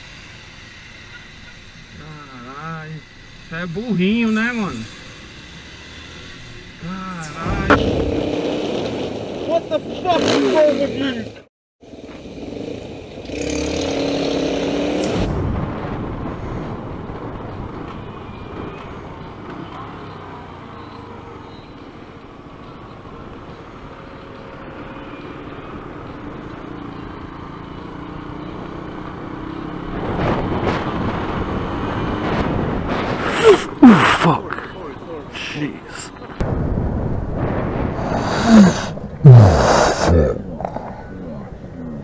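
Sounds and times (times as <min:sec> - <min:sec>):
city traffic: 0:00.0 - 0:42.0
motorcycle engine: 0:00.2 - 0:36.4.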